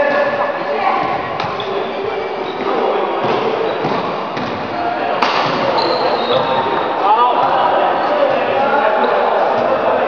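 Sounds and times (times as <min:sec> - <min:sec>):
shoes squeaking on floor: 0:00.0 - 0:07.1
echoing background voices: 0:00.0 - 0:10.0.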